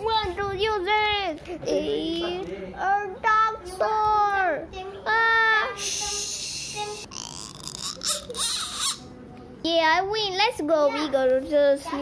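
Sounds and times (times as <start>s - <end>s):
child making hissing mouth sounds: 5.8s - 9.0s
child squealing: 5.9s - 9.1s.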